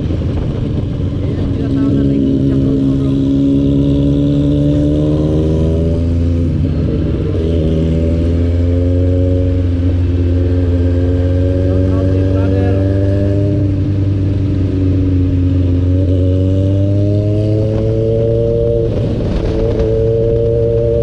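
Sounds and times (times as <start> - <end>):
motorcycle engine accelerating: 0.0 - 21.0.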